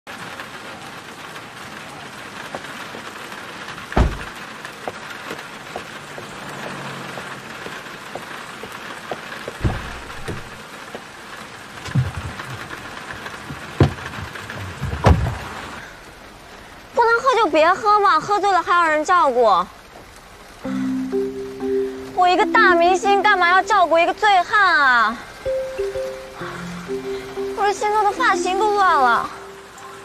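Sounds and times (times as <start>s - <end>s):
steady rain: 0.1s - 30.0s
sharp thuds: 4.0s - 4.3s, 9.5s - 10.6s.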